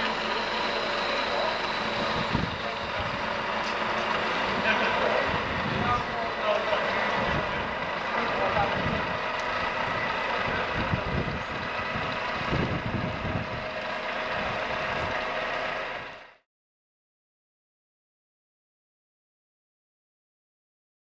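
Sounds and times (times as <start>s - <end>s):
uneven low rumbles: 0.0s - 16.4s.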